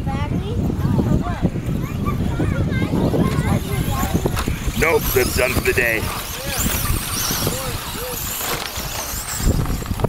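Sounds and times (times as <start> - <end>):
radio-controlled cars racing: 0.7 - 10.0.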